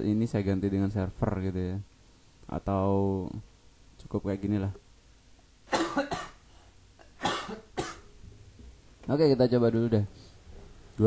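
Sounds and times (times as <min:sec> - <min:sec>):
person coughing: 0:05.7 - 0:06.4, 0:07.0 - 0:08.1.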